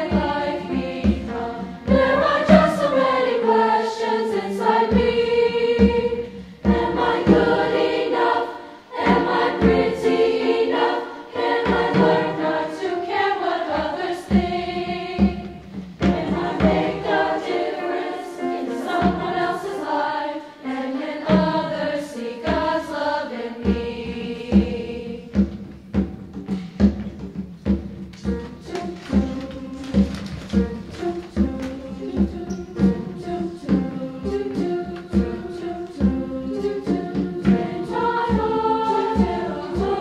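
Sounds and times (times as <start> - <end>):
girls' choir singing: 0.0 - 25.4, 28.2 - 40.0
piano accompaniment: 0.0 - 40.0.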